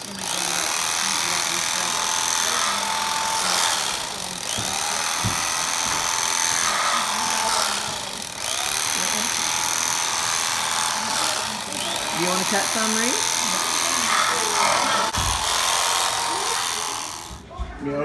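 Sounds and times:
electric carving knife motor: 0.0 - 17.5.

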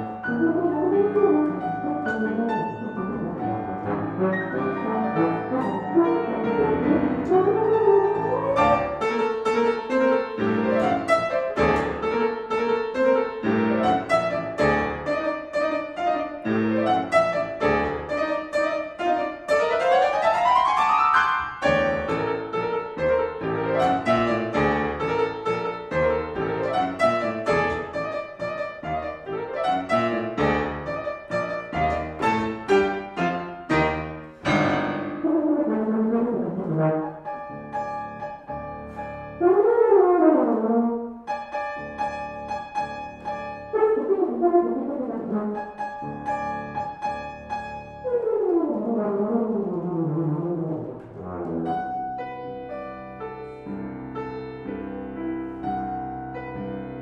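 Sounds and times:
grand piano classical passage: 0.0 - 57.0.

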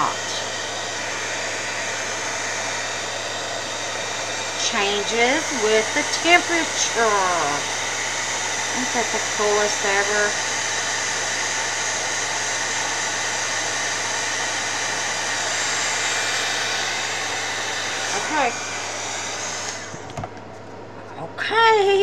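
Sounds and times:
heat gun blowing: 0.0 - 20.2.

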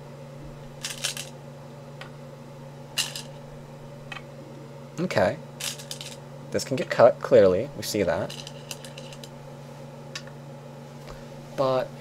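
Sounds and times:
stones clattering in wooden bowl: 0.8 - 1.3, 8.2 - 9.3.

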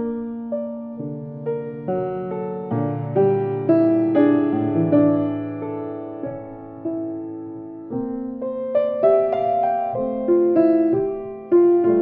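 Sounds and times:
grand piano playing: 0.0 - 12.0.

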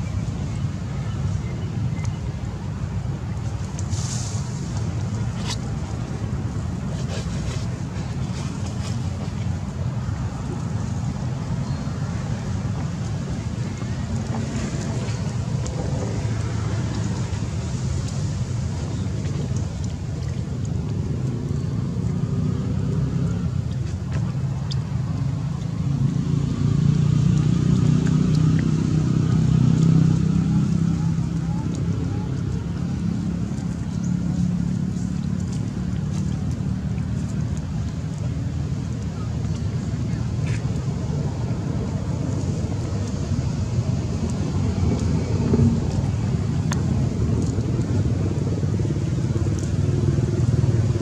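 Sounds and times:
low outdoor rumble: 0.0 - 51.0.

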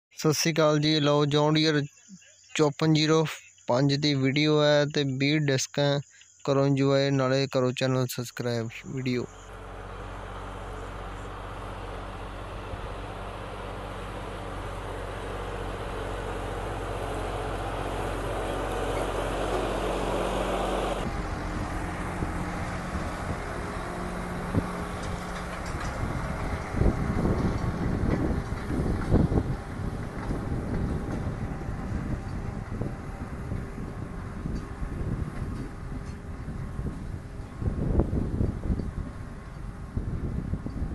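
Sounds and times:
tractor diesel engine: 2.6 - 40.9
loud low bumps: 9.4 - 40.6.

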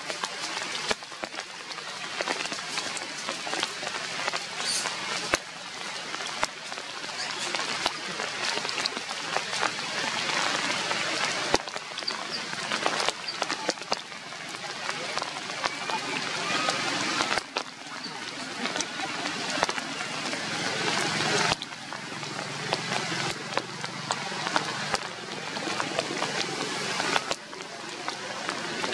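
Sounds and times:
rain on foliage: 0.0 - 28.9
water drips: 0.0 - 28.9.

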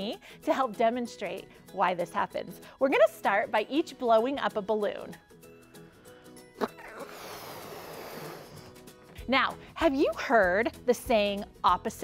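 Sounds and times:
soft background music: 0.0 - 12.0
air rushing into balloon: 7.0 - 8.8.

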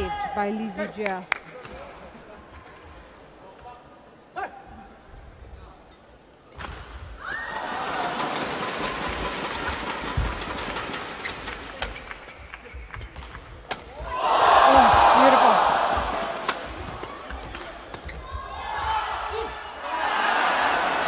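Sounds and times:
crowd cheering and shouting: 7.2 - 9.6, 14.0 - 17.3, 18.2 - 21.0
rackets hitting shuttlecock: 16.3 - 18.2.

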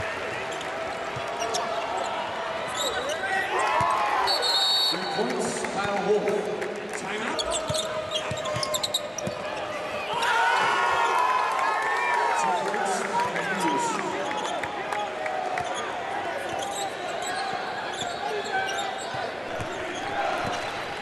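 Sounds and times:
crowd chatter and shouting: 0.0 - 21.0
sneakers squeaking: 0.5 - 5.0, 7.3 - 10.3, 15.5 - 21.0.

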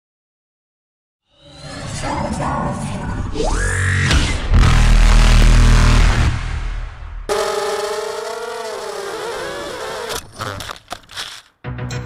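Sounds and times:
quadcopter motors whining: 7.3 - 11.4.

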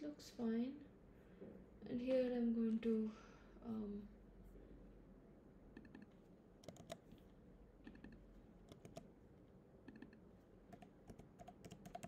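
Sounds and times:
typing on computer keyboard: 6.6 - 7.1, 8.7 - 9.1, 10.7 - 12.0.

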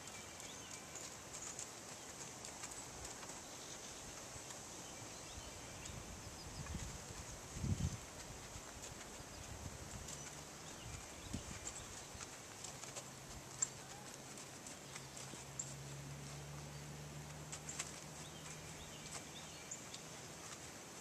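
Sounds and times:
horse hoofbeats on sand: 0.0 - 21.0.

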